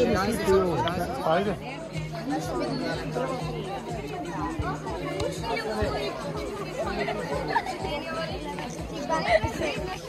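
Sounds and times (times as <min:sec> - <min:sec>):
background music: 0:00.0 - 0:10.0
voices chattering: 0:00.0 - 0:10.0.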